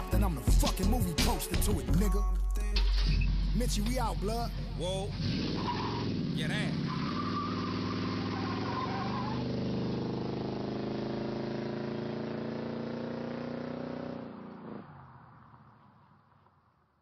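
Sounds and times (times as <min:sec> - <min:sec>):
car engine accelerating away: 0:02.9 - 0:16.2.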